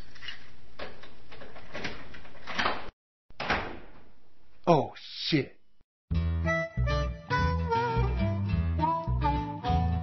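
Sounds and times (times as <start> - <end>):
door thump: 3.3 - 4.1.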